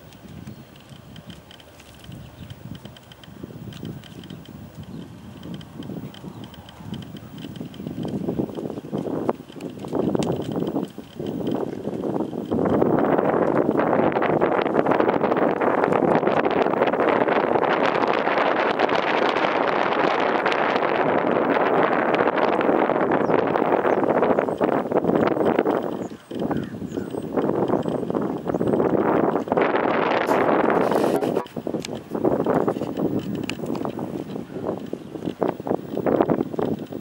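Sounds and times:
wind blowing across microphone: 0.0s - 37.0s.

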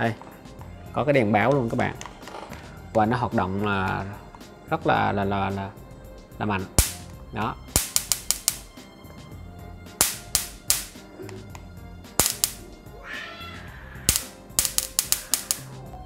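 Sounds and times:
electric swatter snapping: 6.8s - 8.8s, 9.9s - 11.1s, 12.2s - 12.7s, 14.1s - 15.8s.

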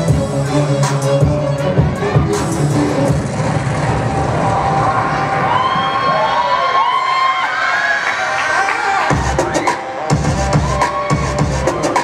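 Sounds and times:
dance music: 0.0s - 12.0s.

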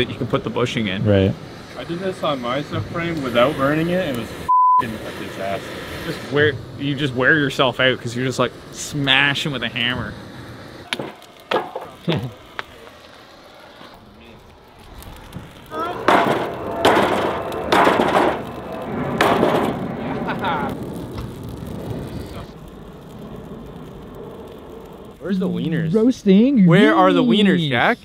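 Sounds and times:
flames burning: 0.0s - 28.0s.

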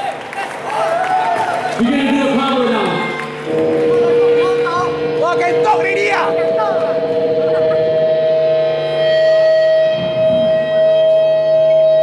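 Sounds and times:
loud amplifier feedback tone: 1.8s - 12.0s.

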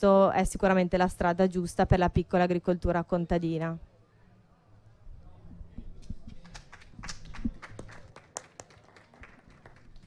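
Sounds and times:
hand clapping: 6.3s - 10.0s.

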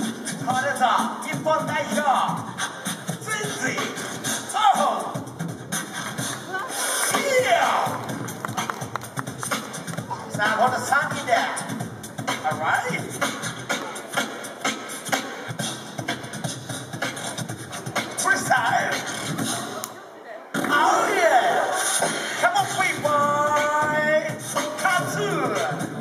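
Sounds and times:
beatboxing: 0.0s - 26.0s.

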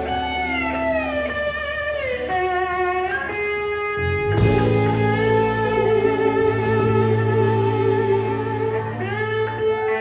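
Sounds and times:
electric guitar blues lead: 0.0s - 10.0s
low steady bass: 3.5s - 10.0s.

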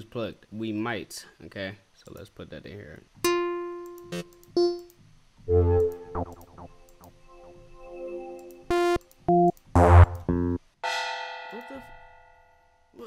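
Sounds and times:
synth chords: 3.5s - 10.7s
held synth note: 5.4s - 10.6s
short plucked synth notes: 5.5s - 7.8s, 8.5s - 10.6s.

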